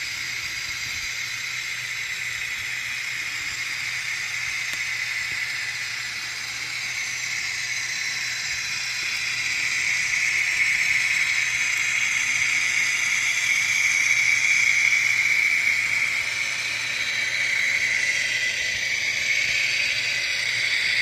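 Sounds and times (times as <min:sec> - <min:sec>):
model train motor whirring: 0:00.0 - 0:21.0.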